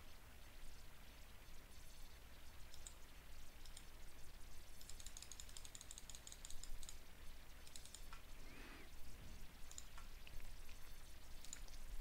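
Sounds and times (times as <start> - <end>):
computer mouse clicking: 2.6 - 3.0, 3.6 - 4.0, 4.7 - 7.0, 7.6 - 8.3, 9.6 - 10.4, 11.2 - 11.8.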